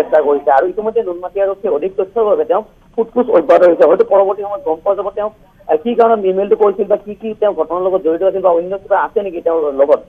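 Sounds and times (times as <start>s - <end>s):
person talking: 0.0s - 10.0s.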